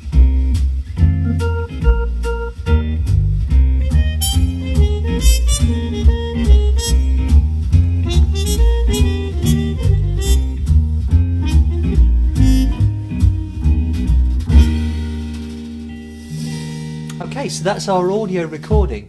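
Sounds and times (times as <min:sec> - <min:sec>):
keyboard song with drums and bass: 0:00.0 - 0:18.0.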